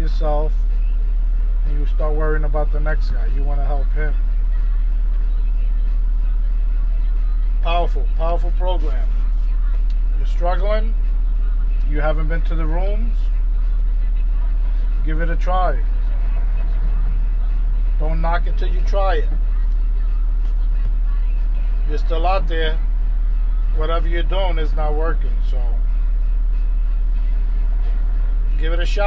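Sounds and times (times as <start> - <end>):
truck engine idling: 0.0 - 29.0.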